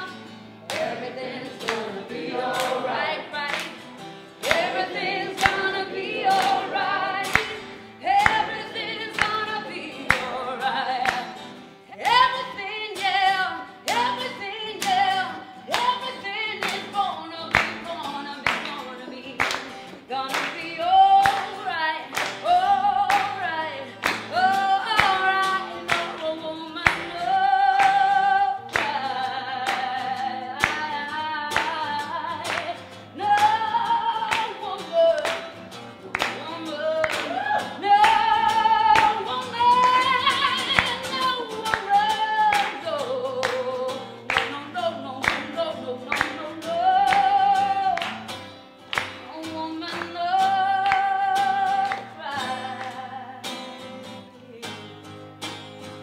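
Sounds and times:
woman singing: 0.0s - 55.2s
guitar accompaniment: 0.0s - 56.0s.

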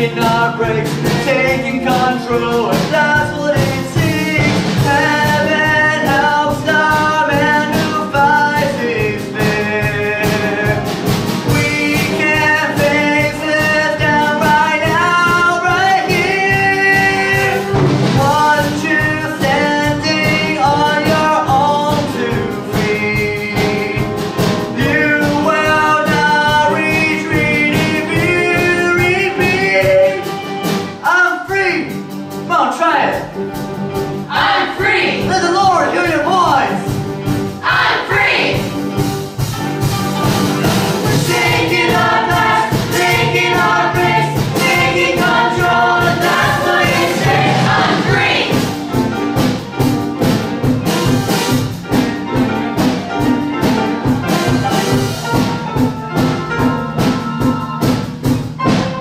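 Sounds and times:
young man singing: 0.0s - 30.4s
rock band playing: 0.0s - 59.0s.

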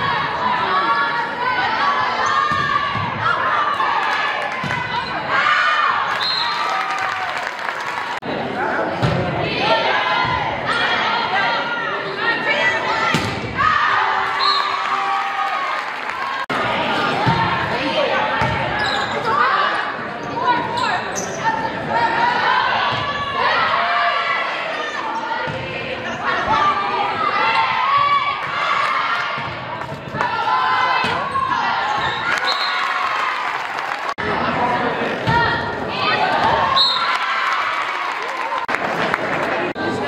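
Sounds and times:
people shouting and cheering: 0.0s - 40.0s.

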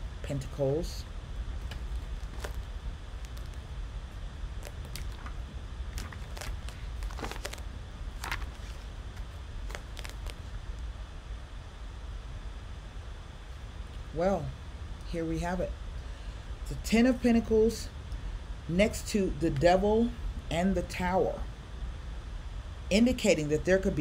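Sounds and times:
steady low hum: 0.0s - 24.0s
paper pages rustling: 1.6s - 3.7s, 4.6s - 10.5s.

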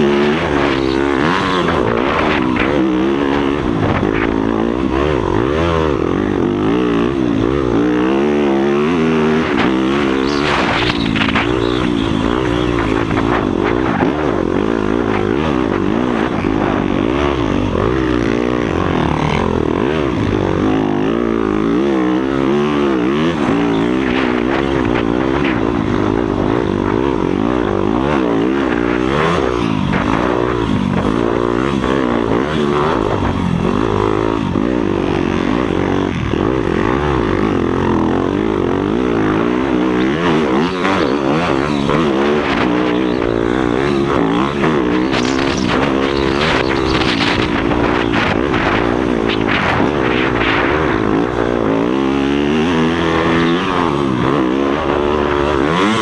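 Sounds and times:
motocross bike engine revving: 0.0s - 56.0s.

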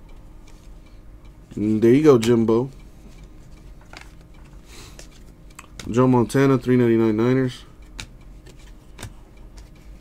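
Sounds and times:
trading card click: 7.9s - 9.8s.

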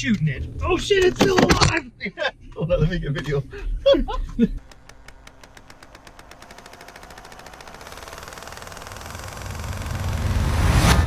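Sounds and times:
rapid clicking swell: 4.4s - 11.0s.

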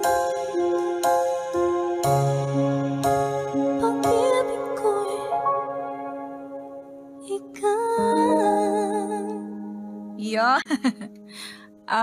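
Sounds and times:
sustained instrumental chord: 0.0s - 7.2s
woman singing with vibrato: 3.8s - 5.4s, 7.2s - 9.5s.

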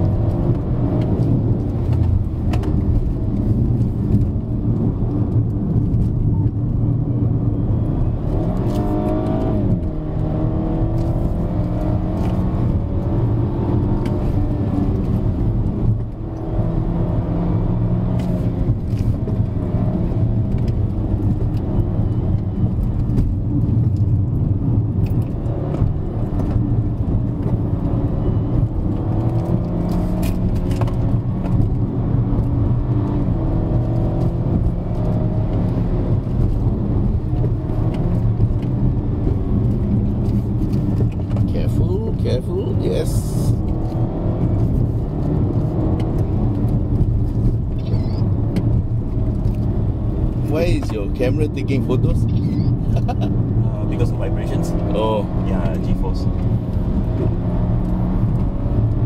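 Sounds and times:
car engine pulling hard: 0.0s - 59.0s
tyre and road noise: 0.0s - 59.0s.

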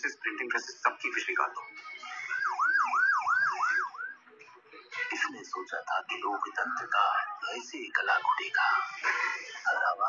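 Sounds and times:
siren rising and falling: 1.9s - 4.2s.

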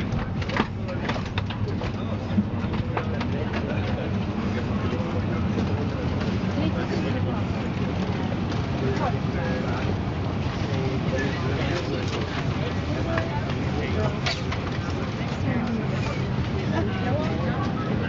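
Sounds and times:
airplane cabin hum: 0.0s - 18.0s
passengers talking: 0.0s - 18.0s.

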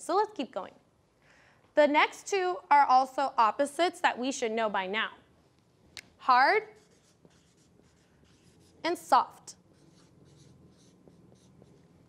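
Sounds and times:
marker scratching on paper: 6.3s - 12.0s.

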